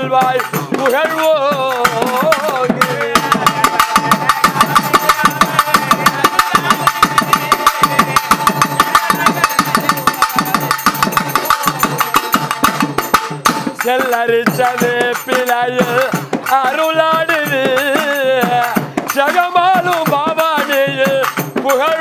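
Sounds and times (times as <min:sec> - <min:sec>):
drums playing fast beat: 0:00.0 - 0:22.0
person singing: 0:00.0 - 0:22.0.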